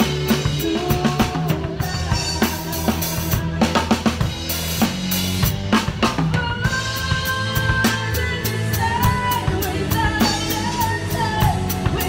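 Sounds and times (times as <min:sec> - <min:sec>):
bass and guitar notes: 0:00.0 - 0:12.0
rock drum kit: 0:00.0 - 0:12.0.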